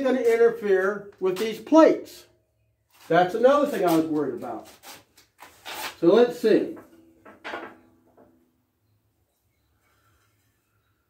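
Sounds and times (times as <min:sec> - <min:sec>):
steel hitch parts clunking: 0:06.6 - 0:08.7.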